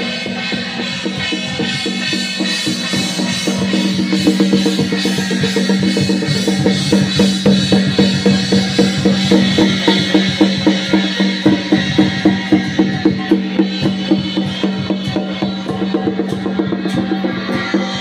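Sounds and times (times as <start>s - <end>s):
drum beating fast: 0.0s - 18.0s.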